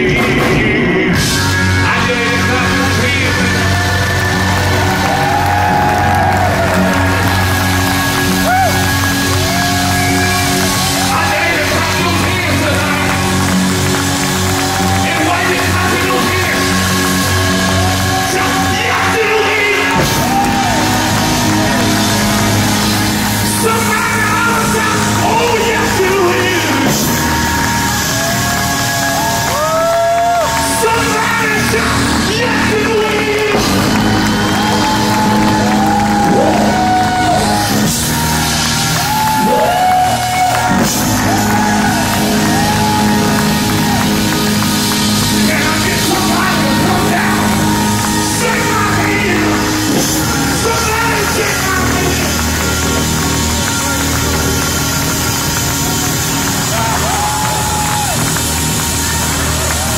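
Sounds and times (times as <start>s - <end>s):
crowd cheering: 0.0s - 59.9s
live blues band playing: 0.0s - 59.9s
audience clapping along: 1.2s - 59.9s.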